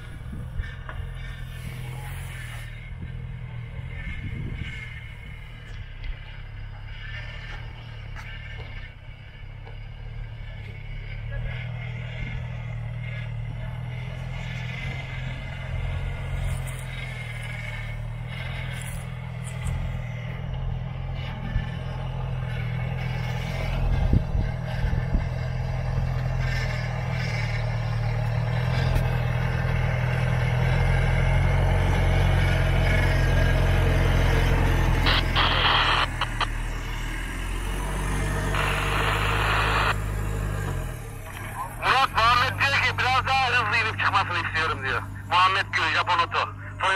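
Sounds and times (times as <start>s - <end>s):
pickup engine running at low revs: 0.0s - 9.8s, 10.4s - 46.9s.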